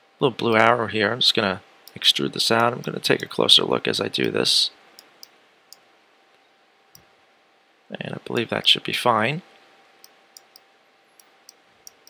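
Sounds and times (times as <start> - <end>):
computer mouse clicks: 10.0 - 10.6, 11.2 - 12.0.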